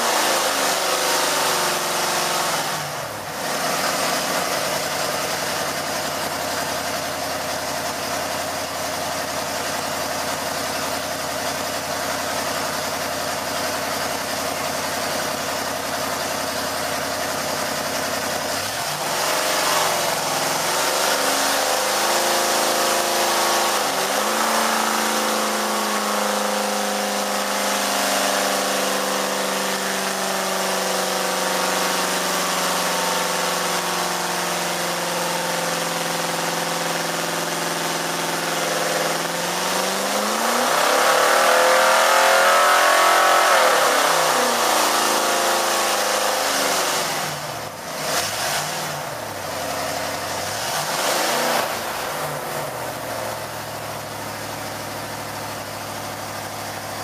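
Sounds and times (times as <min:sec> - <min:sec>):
engine revving on a dyno: 0:00.0 - 0:57.0.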